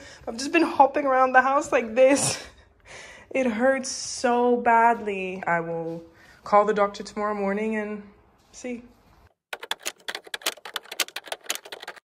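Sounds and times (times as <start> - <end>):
keyboard key clicks: 9.6 - 12.0.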